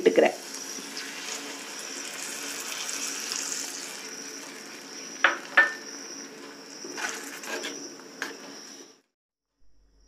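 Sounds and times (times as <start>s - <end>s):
liquid sizzling in hot pot: 0.0s - 7.7s
steel spoon knocking on pot: 5.2s - 5.8s.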